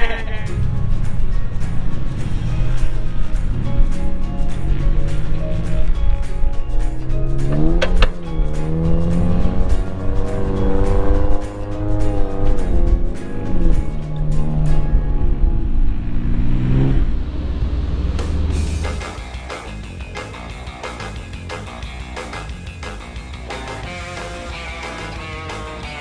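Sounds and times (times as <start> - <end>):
background music with beat: 0.0 - 15.0, 18.1 - 26.0
engine revving under load: 0.6 - 19.3.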